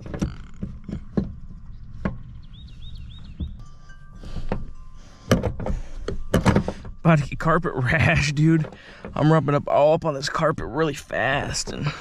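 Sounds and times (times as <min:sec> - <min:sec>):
knocks and thuds of truck seat: 0:00.0 - 0:03.6, 0:05.3 - 0:07.2.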